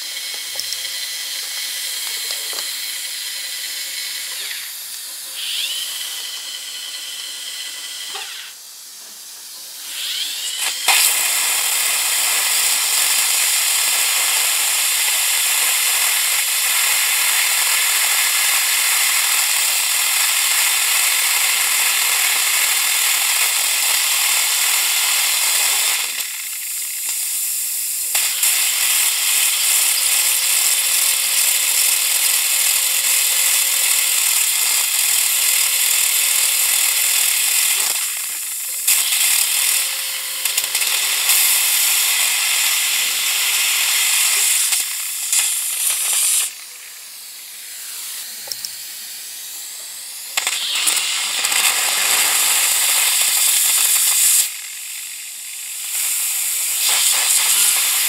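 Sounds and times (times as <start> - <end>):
dental drill whirring: 0.0 - 58.0.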